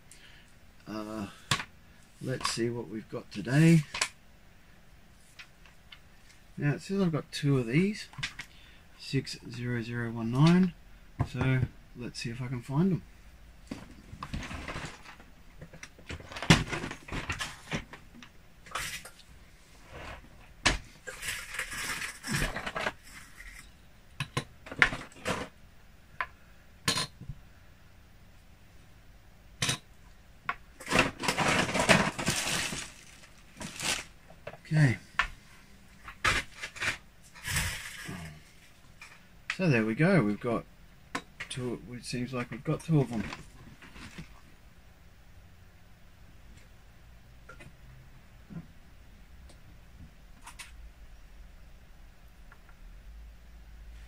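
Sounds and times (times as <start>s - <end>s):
plastic bins sliding: 13.7s - 18.1s, 19.7s - 23.6s, 30.8s - 35.0s, 36.1s - 38.7s
rustling: 30.8s - 39.2s, 43.0s - 44.5s.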